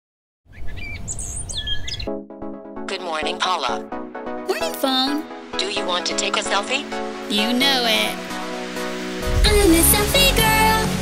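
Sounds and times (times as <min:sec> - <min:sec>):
birds chirping: 0:00.5 - 0:02.2.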